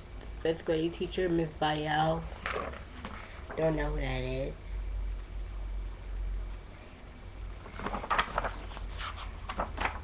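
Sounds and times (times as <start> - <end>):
papers rustling and knocking: 7.6 - 10.0.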